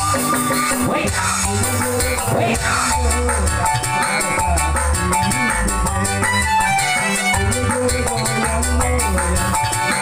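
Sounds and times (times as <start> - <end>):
keyboard band music over speakers: 0.0 - 10.0
shaker and drum beat: 0.0 - 10.0.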